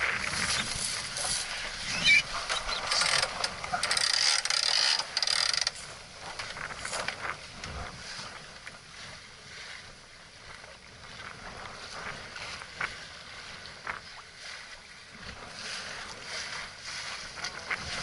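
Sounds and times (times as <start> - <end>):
water splashing along a hull: 0.0 - 18.0
wind buffeting microphone: 5.8 - 18.0.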